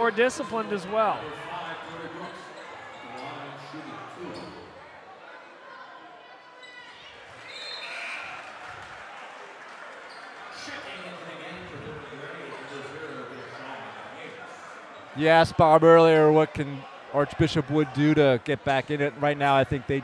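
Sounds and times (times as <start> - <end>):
crowd chatter in echoing gym: 0.0 - 20.0.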